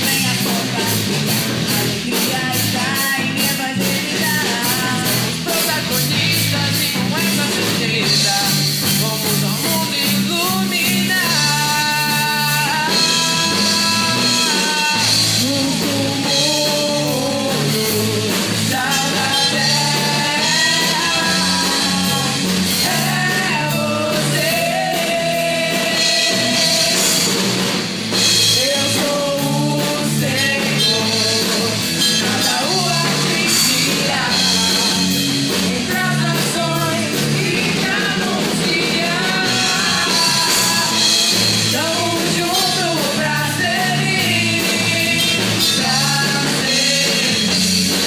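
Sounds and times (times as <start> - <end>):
bass guitar: 0.0 - 48.0
drum kit: 0.0 - 48.0
electric guitars: 0.0 - 48.0
pop-rock band playing: 0.0 - 48.0
voices singing: 0.0 - 48.0.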